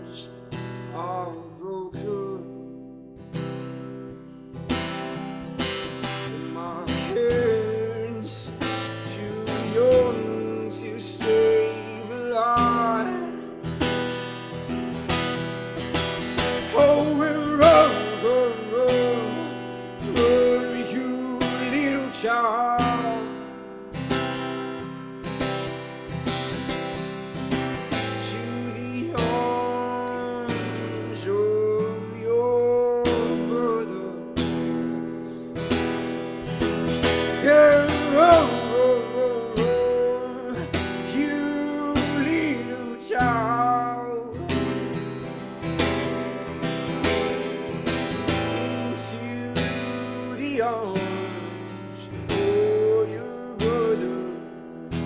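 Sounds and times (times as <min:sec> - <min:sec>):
man singing: 0:00.0 - 0:02.9, 0:05.2 - 0:24.8, 0:27.5 - 0:55.0
acoustic guitar strumming: 0:00.0 - 0:55.0.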